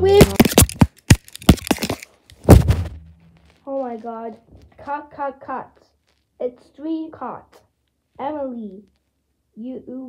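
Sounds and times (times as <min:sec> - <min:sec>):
child's voice: 0:00.0 - 0:00.5, 0:03.6 - 0:09.0, 0:09.6 - 0:10.0.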